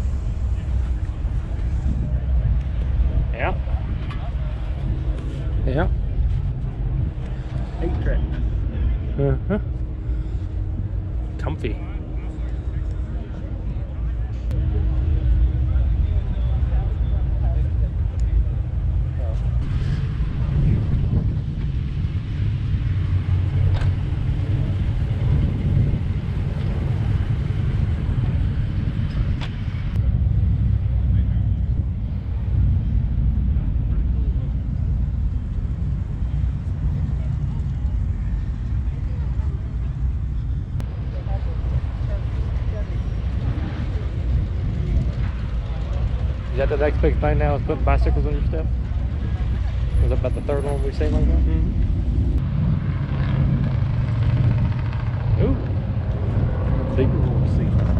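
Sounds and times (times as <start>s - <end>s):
faint voices: 0.0s - 21.2s, 21.8s - 52.4s
heavy low rumble: 0.0s - 57.9s.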